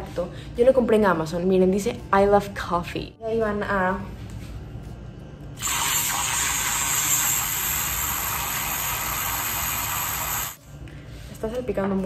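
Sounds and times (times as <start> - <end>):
milk frother whirring: 5.6 - 10.6.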